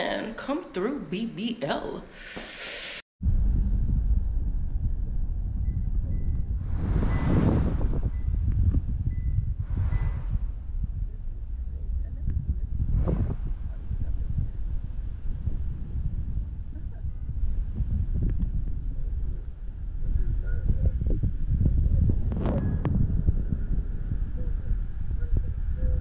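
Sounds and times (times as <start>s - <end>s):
wind buffeting microphone: 3.2s - 26.0s.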